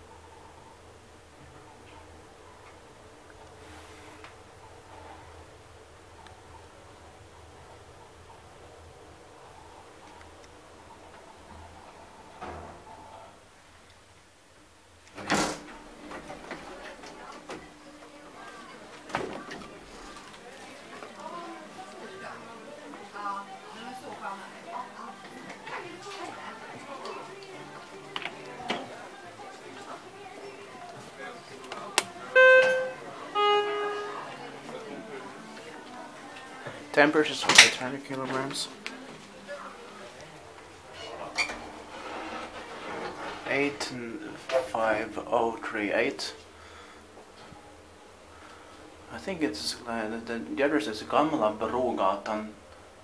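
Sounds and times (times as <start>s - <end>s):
elevator doors clunking open: 15.1s - 17.8s, 32.3s - 34.4s
elevator hum: 15.1s - 37.3s
voices: 15.1s - 51.6s
elevator button click: 32.3s - 34.2s
elevator two-note chime: 32.3s - 34.4s.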